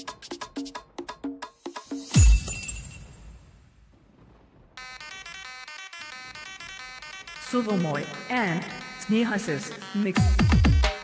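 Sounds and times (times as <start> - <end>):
glass shattering crash: 2.0 - 3.6
electronic dance music: 5.2 - 11.0.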